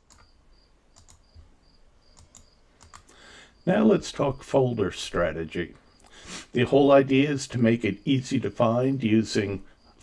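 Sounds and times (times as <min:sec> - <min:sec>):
soft clicks: 0:00.0 - 0:01.4, 0:02.1 - 0:03.1.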